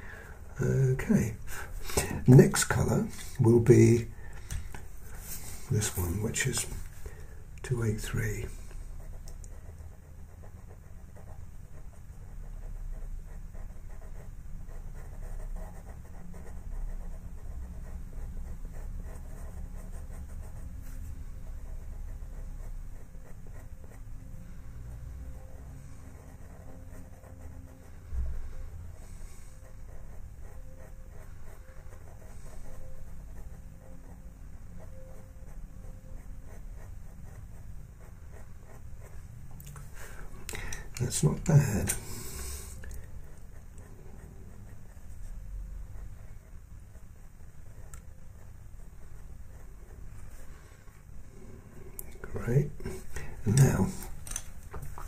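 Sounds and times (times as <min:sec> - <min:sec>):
low room rumble: 0:00.0 - 0:55.0
pastel pencil scratching on paper: 0:04.9 - 0:39.4, 0:41.0 - 0:51.5.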